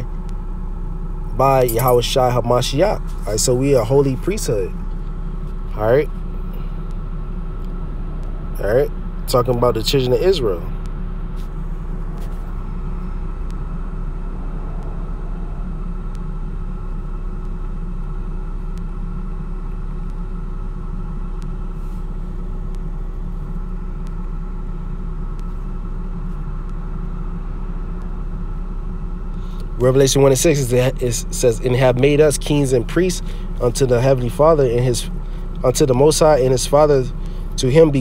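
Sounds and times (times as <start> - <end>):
faint constant hum: 0.0 - 38.0
steady low rumble: 0.0 - 38.0.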